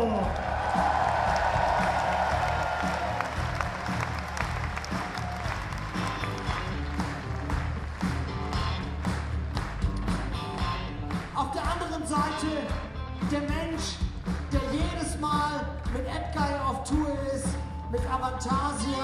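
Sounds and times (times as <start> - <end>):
audience applauding: 0.0 - 12.8
band playing softly: 0.0 - 19.0.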